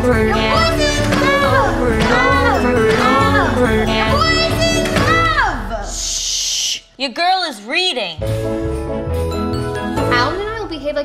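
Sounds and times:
backing music: 0.0s - 5.7s, 8.2s - 11.0s.

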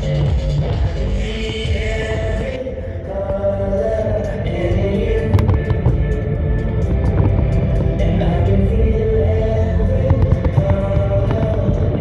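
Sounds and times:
choir-like voices: 0.0s - 12.0s
loud show music: 0.0s - 12.0s.

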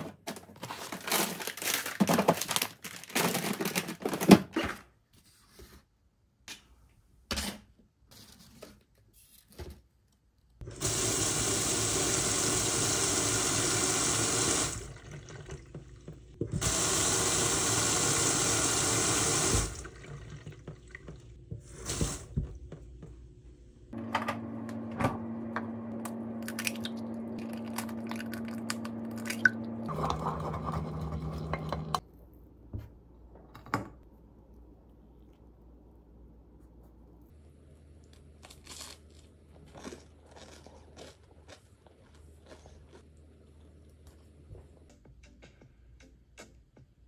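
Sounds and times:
tap water running into sink: 10.7s - 22.7s, 26.6s - 32.0s.

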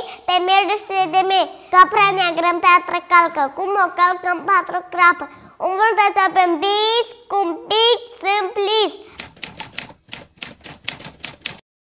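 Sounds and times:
typewriter keys clacking: 9.2s - 11.6s.

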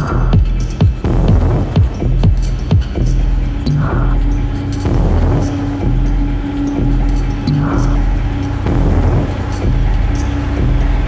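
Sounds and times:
high percussion ticks: 0.0s - 11.0s
low bass line: 0.0s - 11.0s.

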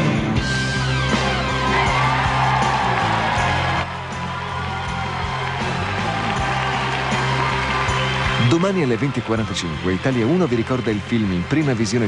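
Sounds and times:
live pop-rock band playing: 0.0s - 3.8s.

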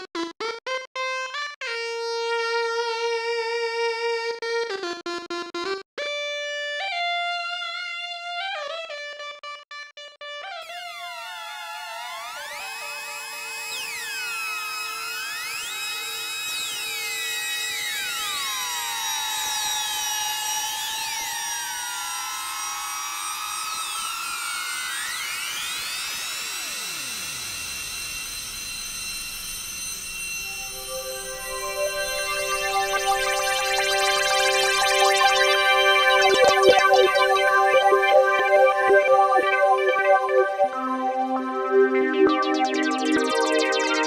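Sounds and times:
synthesizer pitch sweeps: 10.7s - 44.0s.

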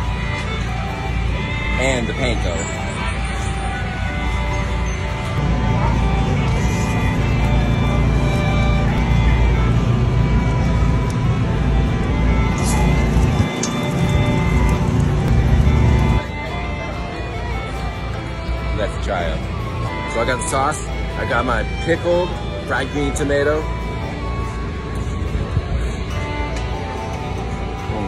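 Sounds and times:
background music with heavy bass: 0.0s - 22.5s.

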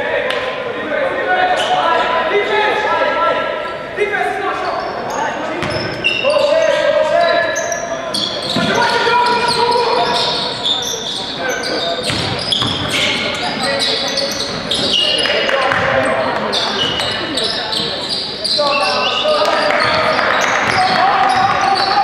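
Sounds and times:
shoes squeaking on floor: 4.6s - 22.0s
basketball bouncing: 5.6s - 6.0s, 12.0s - 13.1s
people calling out: 16.0s - 22.0s.

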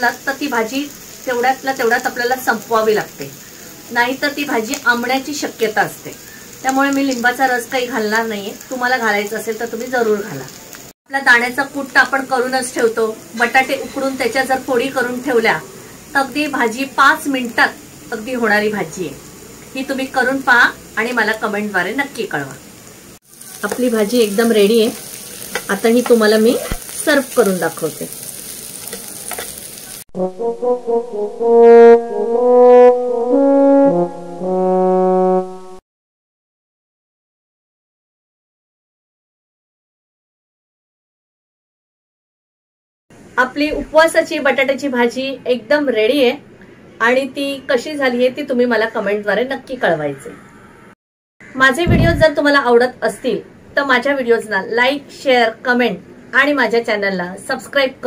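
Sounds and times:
woman speaking: 0.0s - 10.5s, 11.1s - 19.2s, 19.8s - 22.6s, 23.6s - 25.0s, 25.7s - 28.2s, 43.4s - 46.4s, 47.0s - 50.4s, 51.6s - 58.0s
faint steady hiss: 0.0s - 30.0s
frying sizzle: 0.0s - 30.1s
food stirred in frying pan: 23.2s - 30.0s.

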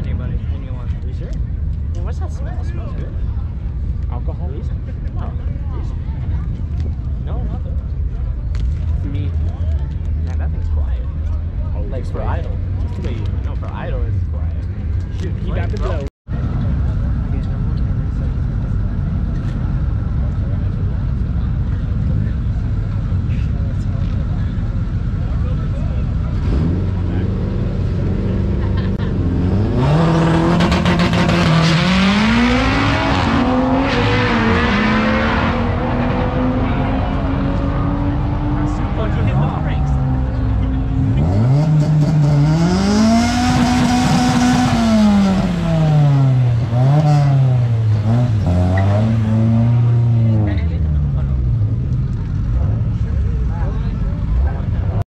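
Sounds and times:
crowd chatter: 0.0s - 55.0s
drag car engine revving: 18.2s - 55.0s.

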